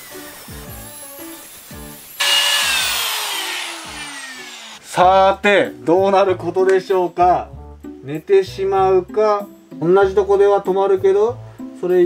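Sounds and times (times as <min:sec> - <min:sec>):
angle grinder whining: 0:02.2 - 0:04.8.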